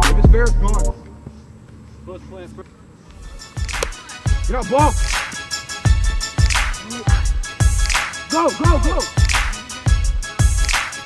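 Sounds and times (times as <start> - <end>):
music with heavy bass beat: 0.0 - 0.9, 3.3 - 11.0
rapped vocals: 0.0 - 1.0, 6.1 - 10.8
person shouting: 6.8 - 7.4, 8.3 - 9.7.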